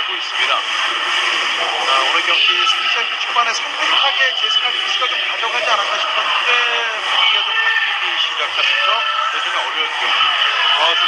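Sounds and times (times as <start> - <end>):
overlapping voices: 0.0 - 11.0.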